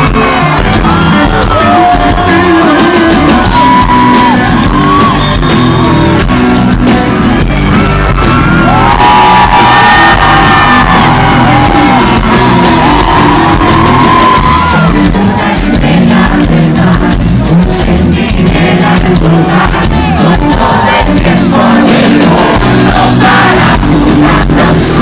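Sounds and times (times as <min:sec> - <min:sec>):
person singing: 0:00.0 - 0:06.5, 0:08.6 - 0:25.0
bass guitar: 0:00.0 - 0:25.0
drums: 0:00.0 - 0:25.0
electric guitar: 0:00.0 - 0:25.0.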